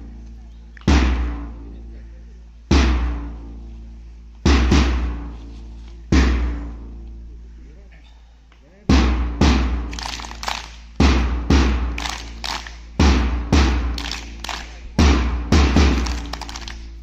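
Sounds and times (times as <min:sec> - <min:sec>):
heavy deep drum hits: 0:00.9 - 0:01.6, 0:02.7 - 0:03.5, 0:04.5 - 0:05.3, 0:06.1 - 0:06.8, 0:08.9 - 0:09.9, 0:11.0 - 0:12.0, 0:13.0 - 0:14.0, 0:15.0 - 0:16.2.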